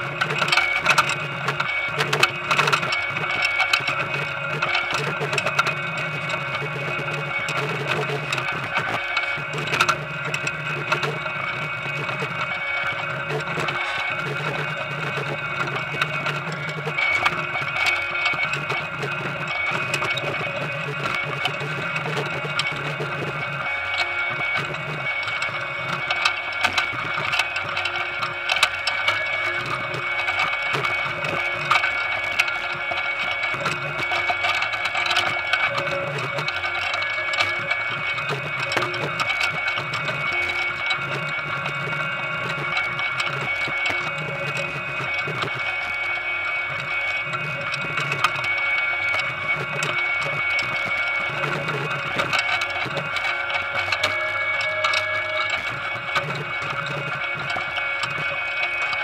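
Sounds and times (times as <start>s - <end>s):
harvester machinery whine and hum: 0.0s - 59.0s.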